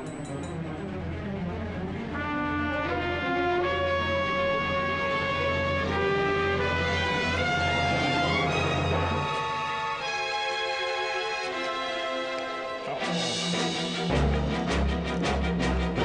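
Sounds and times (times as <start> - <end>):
brass sustained notes: 0.9 - 16.0
low drone: 4.0 - 10.4.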